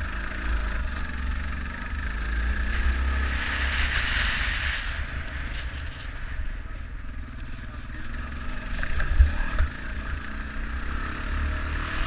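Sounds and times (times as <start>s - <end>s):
atv engine running: 0.0s - 3.2s, 6.8s - 12.0s.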